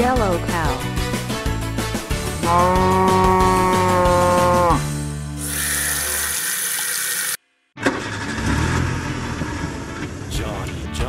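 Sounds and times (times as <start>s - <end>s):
cartoon cow mooing: 2.4s - 4.9s.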